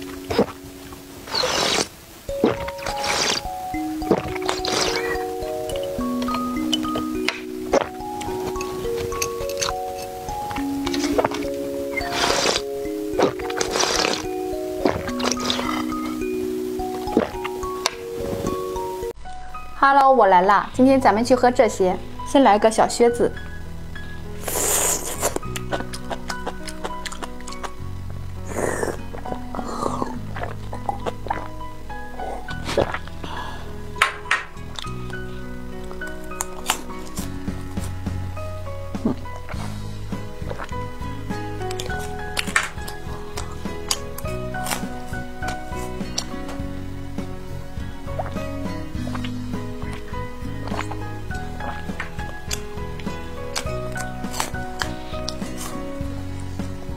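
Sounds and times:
noisy gulp: 0:00.0 - 0:18.8, 0:28.4 - 0:31.6, 0:32.2 - 0:34.0, 0:49.0 - 0:55.8
sipping and swallowing: 0:00.0 - 0:18.8, 0:24.4 - 0:27.8, 0:28.4 - 0:34.0, 0:38.9 - 0:46.7, 0:48.1 - 0:55.9
background music: 0:00.0 - 0:56.9
wet slurping from a tube: 0:01.3 - 0:03.5, 0:04.1 - 0:05.3, 0:10.8 - 0:16.2, 0:24.4 - 0:27.7, 0:28.4 - 0:31.6.

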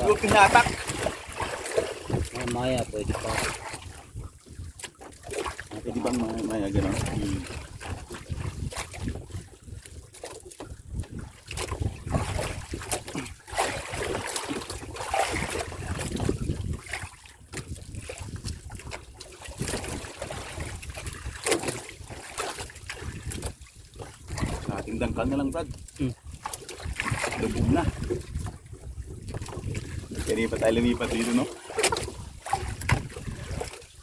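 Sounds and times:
water splashing against boat hull: 0:00.0 - 0:34.0
wind rumbling on microphone: 0:00.0 - 0:34.0.

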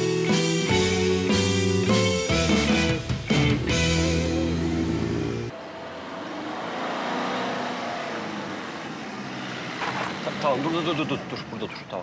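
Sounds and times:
background music: 0:00.0 - 0:07.0
taxi engine: 0:00.4 - 0:12.0
tyres on cobblestones: 0:05.5 - 0:12.0.

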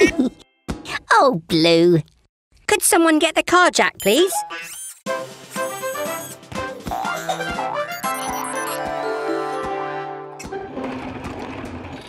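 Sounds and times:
background music: 0:05.1 - 0:11.8.

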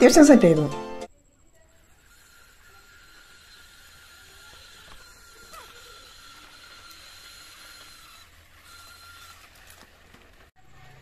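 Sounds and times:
small gear motors whining: 0:01.6 - 0:11.0.

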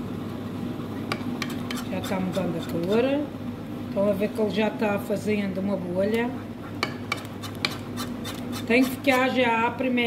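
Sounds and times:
whisk stirring thick cream: 0:01.4 - 0:03.0, 0:06.6 - 0:09.4
whisk clicking against pot: 0:06.8 - 0:09.2.

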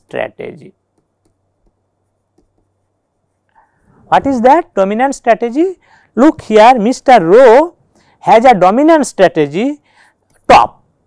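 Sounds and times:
stylus ticking on pen tablet: 0:00.9 - 0:02.8.

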